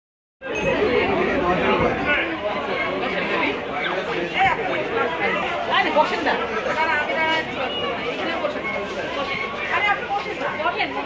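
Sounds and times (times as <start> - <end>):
chatter of voices: 0.4 - 11.0.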